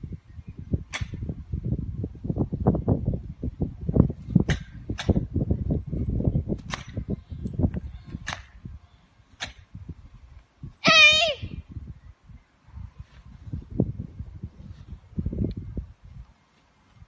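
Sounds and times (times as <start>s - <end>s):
wind rumble on microphone: 0.0s - 17.0s
sharp snaps of strikes and kicks: 0.9s - 1.2s, 4.4s - 5.2s, 6.6s - 7.0s, 9.4s - 9.6s
loud kiai shout: 10.8s - 11.5s.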